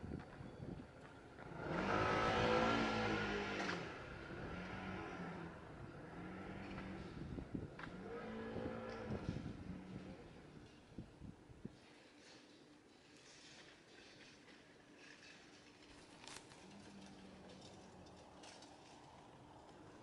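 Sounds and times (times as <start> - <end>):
vehicle passing by: 1.4 - 10.4.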